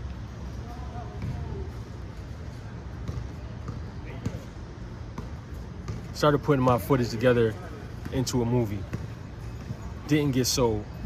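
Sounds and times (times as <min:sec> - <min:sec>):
faint voices of players: 0:00.4 - 0:11.0
basketballs bouncing on court: 0:00.6 - 0:11.0.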